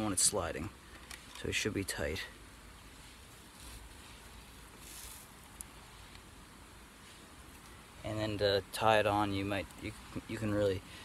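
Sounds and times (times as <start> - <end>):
soft rush of noise: 0.0 - 11.0
hands rustling wire: 2.8 - 8.0.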